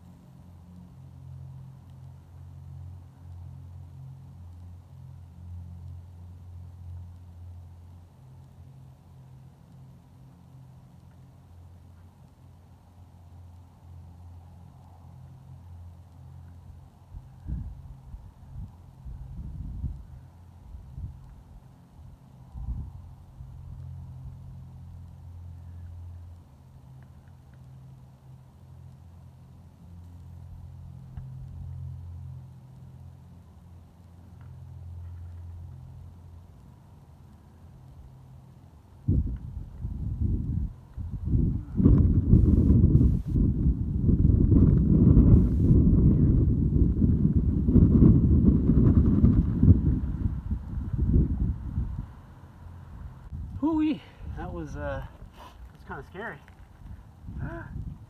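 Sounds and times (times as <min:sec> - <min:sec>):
distant motor traffic rumble: 0:00.0 - 0:58.0
wind buffeting microphone: 0:17.1 - 0:21.4, 0:39.0 - 0:52.3, 0:52.9 - 0:55.4, 0:56.7 - 0:58.0.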